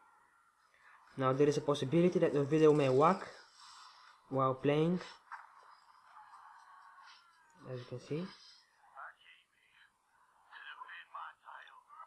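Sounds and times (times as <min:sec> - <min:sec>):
man speaking: 0:01.2 - 0:03.4, 0:04.3 - 0:05.2, 0:07.6 - 0:09.9.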